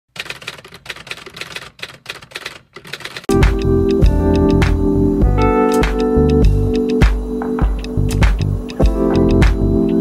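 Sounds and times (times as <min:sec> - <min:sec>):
typing clicks: 0:00.2 - 0:04.8, 0:05.6 - 0:09.6
music: 0:03.3 - 0:10.0.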